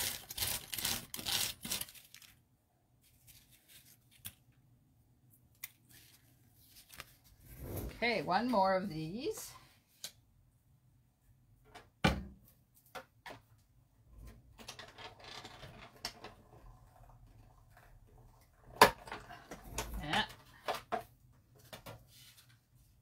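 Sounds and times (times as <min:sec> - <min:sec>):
paper rustling and scraping: 0:03.0 - 0:04.4, 0:05.9 - 0:08.0.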